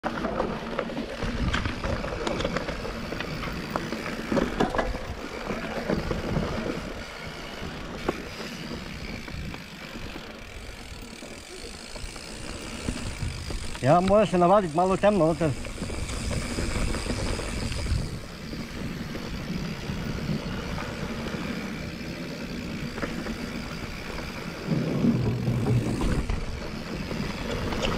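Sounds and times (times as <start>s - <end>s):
bike tyre riding noise: 0.0s - 27.9s
bike knocks and rattles: 0.1s - 21.7s, 22.4s - 27.9s.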